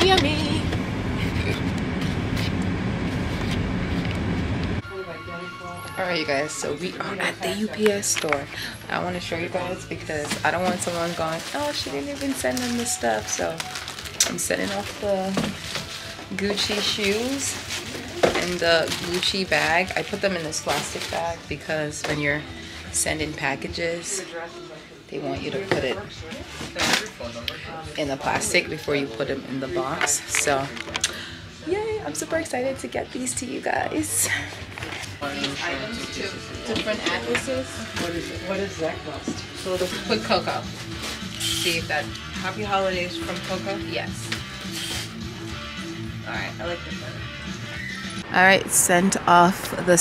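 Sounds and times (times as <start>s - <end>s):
woman talking: 0.0s - 1.7s, 5.5s - 15.6s, 16.3s - 17.6s, 18.2s - 24.3s, 28.0s - 30.8s, 31.6s - 34.6s, 41.6s - 44.2s, 48.2s - 50.0s.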